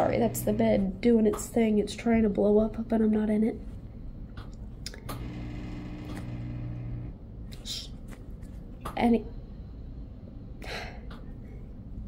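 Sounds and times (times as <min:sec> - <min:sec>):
air-mattress pump humming: 0:00.0 - 0:01.0, 0:04.8 - 0:07.2.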